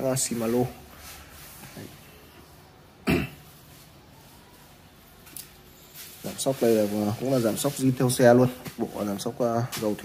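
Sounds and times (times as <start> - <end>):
person coughing: 3.0 - 3.4.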